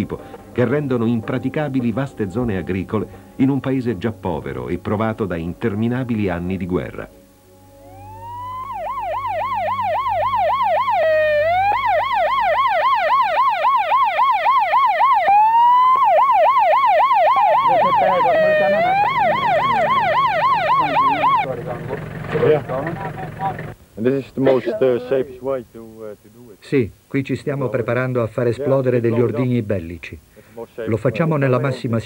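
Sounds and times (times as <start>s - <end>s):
vehicle siren wailing: 7.8s - 23.8s
low engine hum: 17.5s - 23.8s.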